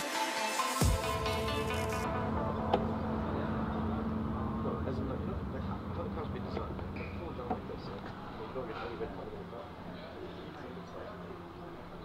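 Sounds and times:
steady low rumble: 0.8s - 8.7s
faint voices: 2.2s - 12.0s.

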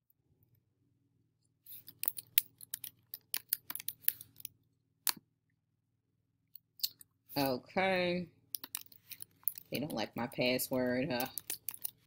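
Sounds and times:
keyboard typing: 1.8s - 4.5s, 8.6s - 10.0s, 11.2s - 12.0s.

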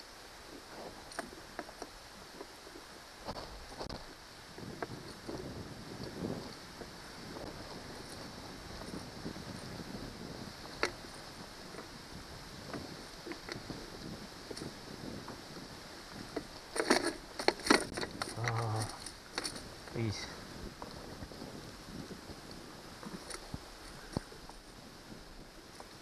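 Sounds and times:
faint wind hiss: 0.0s - 26.0s
man humming: 18.3s - 19.1s
man grunting: 18.4s - 19.0s.

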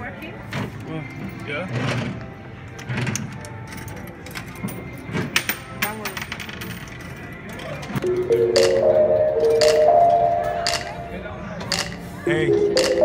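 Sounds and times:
coins clinking into machine: 3.3s - 13.0s.

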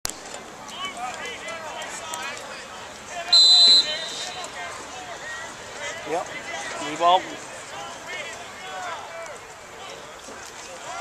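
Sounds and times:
referee's whistle blast: 3.3s - 4.4s.

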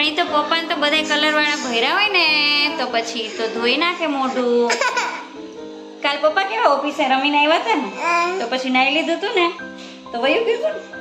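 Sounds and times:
music playing: 0.0s - 11.0s
toddler crying: 2.5s - 5.4s, 7.9s - 8.6s.

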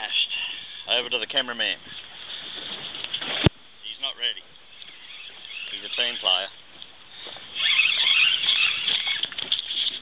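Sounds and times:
fishing reel drag buzzing: 4.7s - 6.5s, 7.2s - 10.0s.

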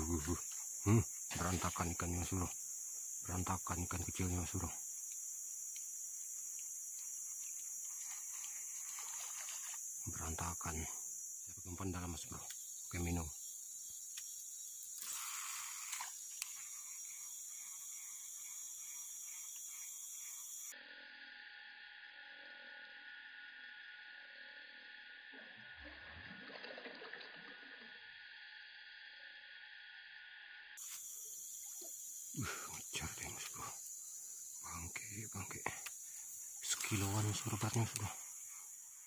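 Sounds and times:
river ambience: 0.0s - 20.7s, 30.8s - 39.0s
insect chorus drone: 0.0s - 39.0s.

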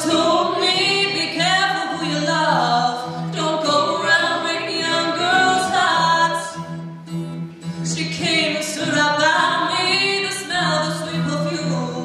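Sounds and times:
woman singing: 0.0s - 6.7s, 7.8s - 12.0s
quiet acoustic guitar: 0.0s - 12.0s.

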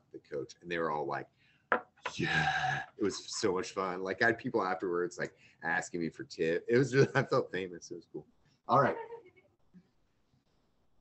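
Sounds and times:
person speaking: 1.8s - 9.2s.

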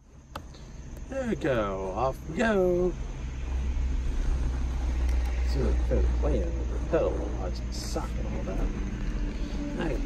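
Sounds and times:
car engine low rumble: 0.0s - 10.0s.

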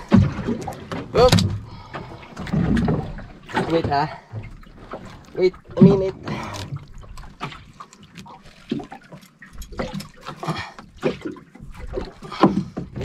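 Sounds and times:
water splashing and dripping: 0.0s - 13.0s.

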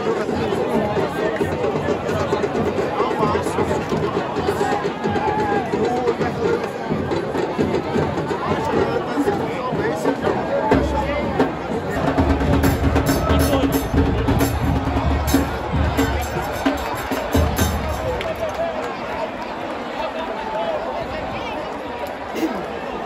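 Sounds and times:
bass drums: 10.7s - 18.3s.

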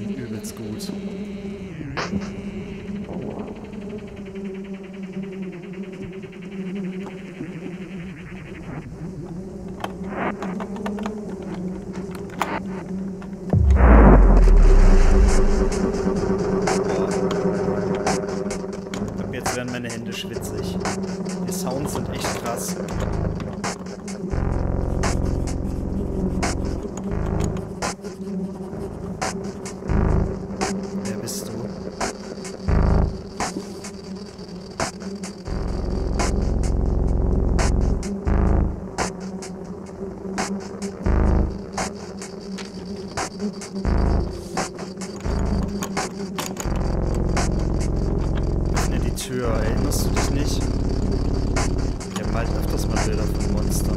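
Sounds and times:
low horror drone: 0.0s - 33.7s, 46.6s - 53.9s
sharp clicks: 9.2s - 13.6s, 21.7s - 24.2s, 26.4s - 28.0s, 44.6s - 49.1s
deep rumble: 13.5s - 18.1s.

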